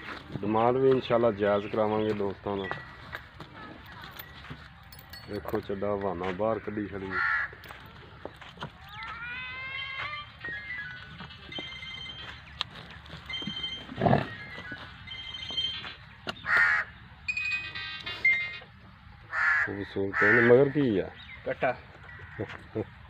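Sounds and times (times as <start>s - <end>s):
crow cawing: 6.6s - 7.6s, 16.4s - 17.0s, 19.3s - 20.9s, 22.0s - 22.6s
faint high melody with glides: 9.0s - 16.0s, 17.3s - 18.8s.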